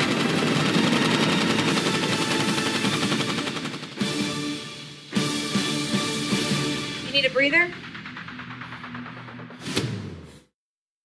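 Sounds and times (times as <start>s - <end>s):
machine gun automatic fire: 0.0s - 4.0s.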